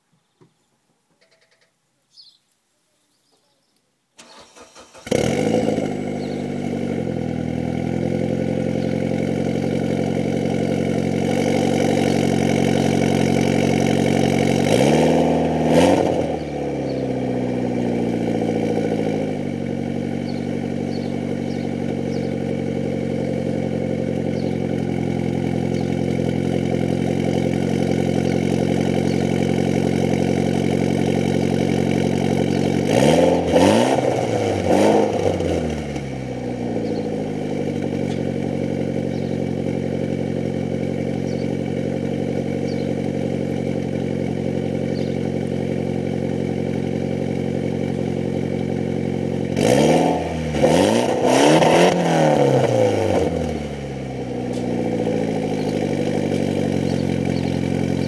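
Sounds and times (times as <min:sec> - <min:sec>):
car engine idling: 0:04.2 - 0:58.0
car engine revving: 0:04.2 - 0:58.0.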